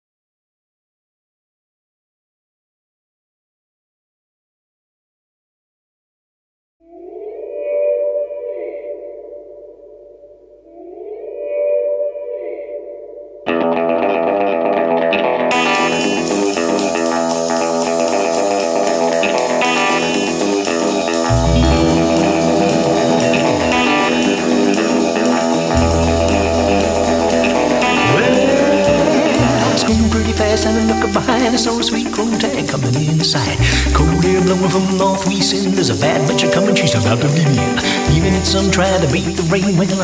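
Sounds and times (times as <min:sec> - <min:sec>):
effect-laden electric guitar tones: 0:13.4 - 0:39.6
rock band with drums and cymbals: 0:15.5 - 0:40.0.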